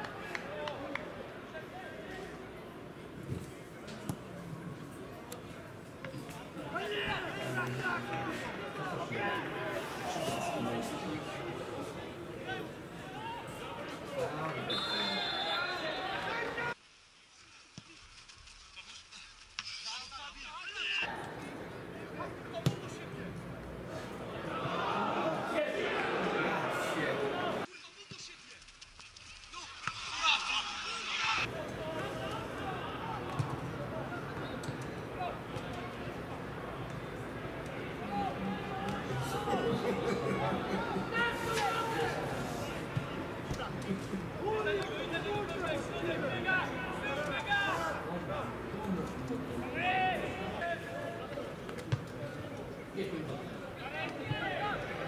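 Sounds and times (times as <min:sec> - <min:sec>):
distant shouts of players and crowd: 0:06.0 - 0:16.8, 0:24.0 - 0:27.7, 0:31.1 - 0:48.8, 0:49.5 - 0:55.0
referee's whistle blast: 0:14.6 - 0:16.2
spectators talking and calling out: 0:30.2 - 0:55.0.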